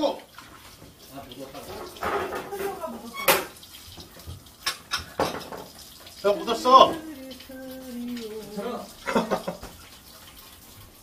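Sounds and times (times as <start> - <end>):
tap water running: 0.0 - 11.0
dishes clinking and knocking: 1.6 - 5.9.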